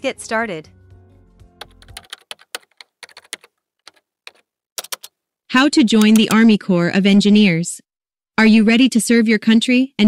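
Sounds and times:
keyboard typing: 0:01.6 - 0:05.2, 0:05.9 - 0:06.5.

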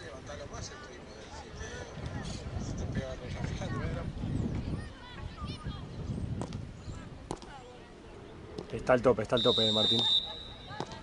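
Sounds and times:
faint distant voices: 0:00.0 - 0:11.0
wind rumble on microphone: 0:01.5 - 0:07.4.

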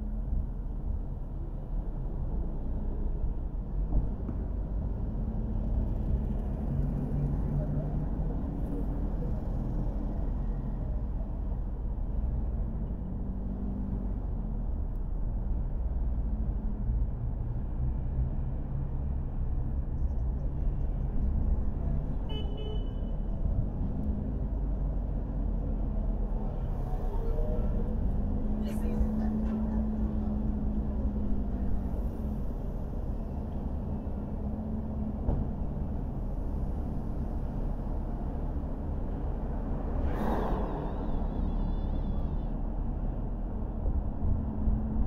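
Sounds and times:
car road and engine noise: 0:00.0 - 0:45.0.

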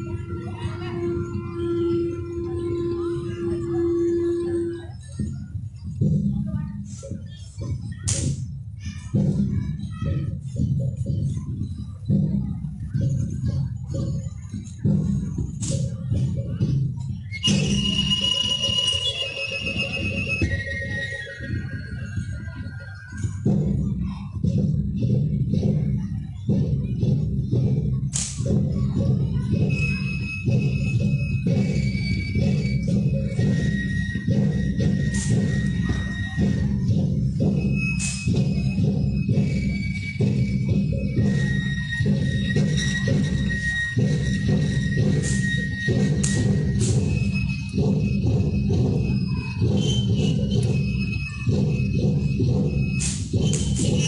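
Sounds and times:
high ringing tones: 0:17.4 - 0:23.1
deep drum beaten fast: 0:23.3 - 0:54.0.

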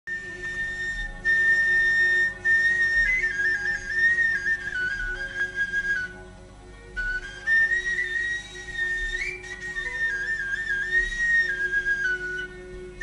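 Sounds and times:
flute melody: 0:00.1 - 0:13.0
soft low accompaniment: 0:00.1 - 0:13.0.

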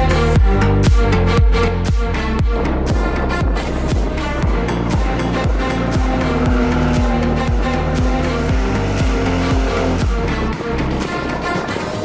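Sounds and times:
music with thumping beat: 0:00.0 - 0:12.0
car engine at high revs: 0:03.6 - 0:11.2.

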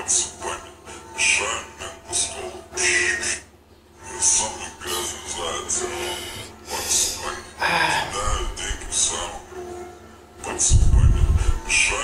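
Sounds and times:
music playing back: 0:00.0 - 0:12.0
man saying ah: 0:05.8 - 0:08.6.

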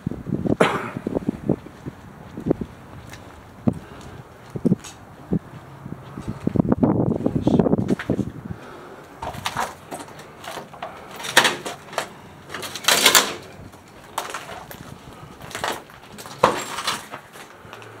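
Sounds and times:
scuffing footsteps and knocks: 0:01.4 - 0:08.4, 0:09.1 - 0:18.0.

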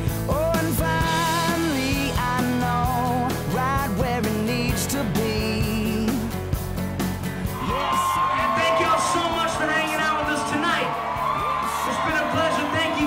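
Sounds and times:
live band music: 0:00.0 - 0:12.1
crowd yelling and whooping: 0:07.4 - 0:13.0.

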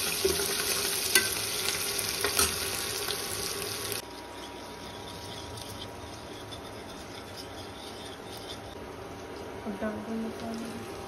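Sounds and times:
whisk scraping metal pot: 0:04.0 - 0:09.6.

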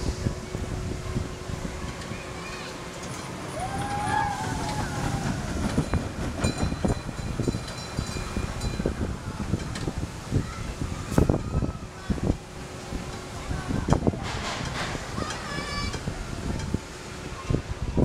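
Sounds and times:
roller coaster rumbling on track: 0:00.0 - 0:18.0
knocks and clacks: 0:05.1 - 0:08.2.

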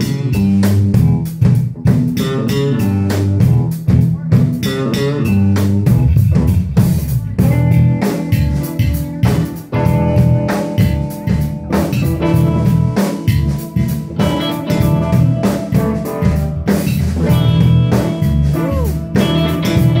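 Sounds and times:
band playing blues: 0:00.0 - 0:20.0
drum kit steady beat: 0:00.0 - 0:20.0
guitar: 0:00.0 - 0:20.0.

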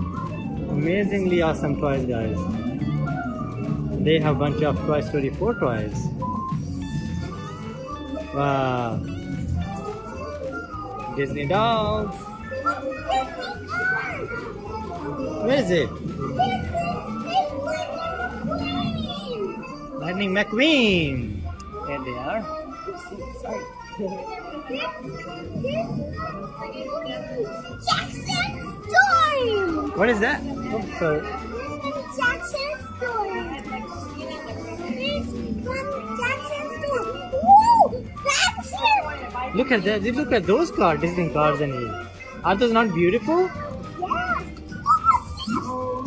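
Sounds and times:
adults and children talking: 0:00.0 - 0:46.0
background music: 0:00.0 - 0:46.0
child's excited voice: 0:24.7 - 0:29.8, 0:31.6 - 0:33.6, 0:34.2 - 0:39.3, 0:43.6 - 0:46.0.

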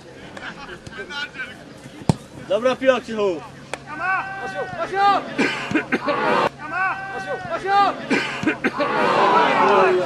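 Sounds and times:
distant shouting voices: 0:03.4 - 0:10.0.

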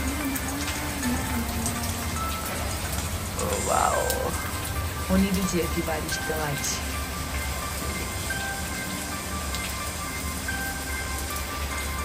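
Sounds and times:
heavy rain: 0:00.0 - 0:12.0
soft background music: 0:00.0 - 0:12.0.

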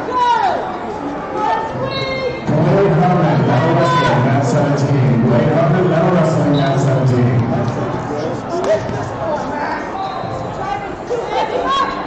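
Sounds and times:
indistinct chatter in a hall: 0:00.0 - 0:12.0.

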